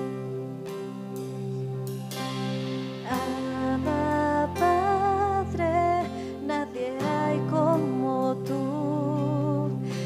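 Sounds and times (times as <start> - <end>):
acoustic guitar chords: 0.0 - 10.0
keyboard chords: 0.0 - 10.0
woman singing: 3.0 - 10.0.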